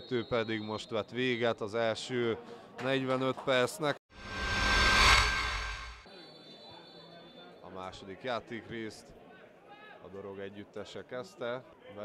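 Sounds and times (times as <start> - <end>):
steady high tone: 4.2 - 6.1
whoosh sound effect: 4.2 - 6.1.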